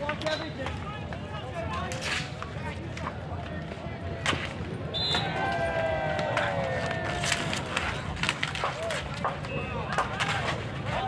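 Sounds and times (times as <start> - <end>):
players' voices: 0.0 - 11.0.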